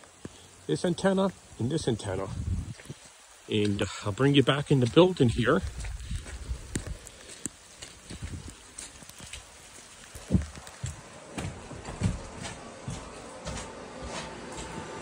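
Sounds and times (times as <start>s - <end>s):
footsteps: 4.6s - 15.0s
faint equipment hum: 10.4s - 15.0s.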